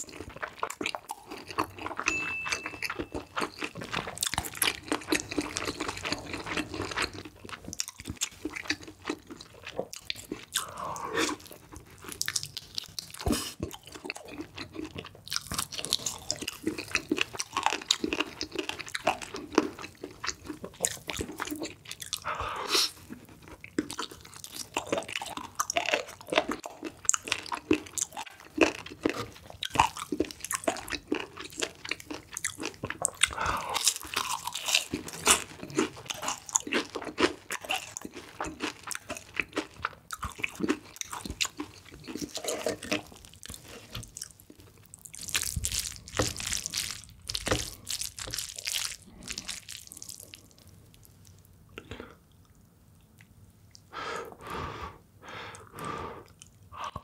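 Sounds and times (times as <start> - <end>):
crunching and chewing fried chicken: 0.0 - 53.9.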